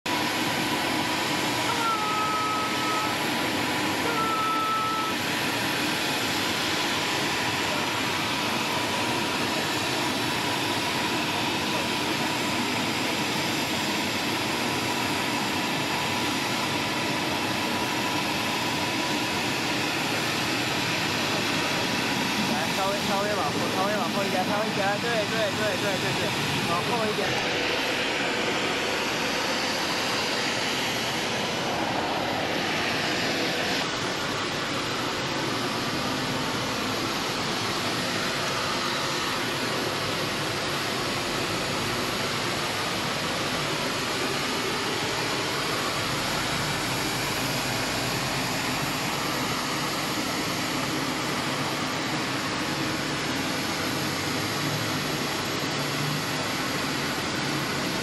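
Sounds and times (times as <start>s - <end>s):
jet engines rushing: 0.1s - 58.0s.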